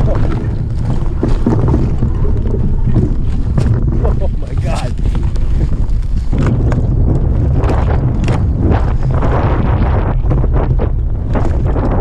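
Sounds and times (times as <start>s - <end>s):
bike rattling over rocks: 0.0s - 12.0s
wind buffeting microphone: 0.0s - 12.0s.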